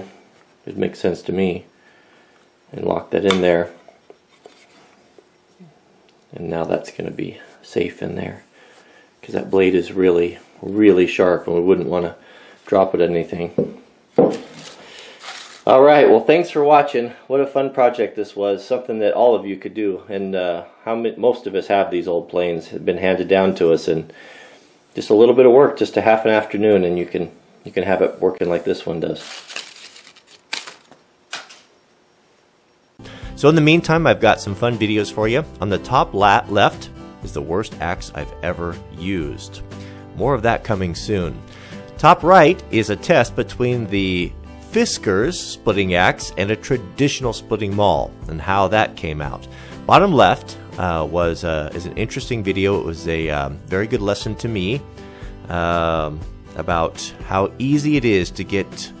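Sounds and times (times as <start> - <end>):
wood shavings crinkling: 14.4 - 15.7, 29.0 - 31.6.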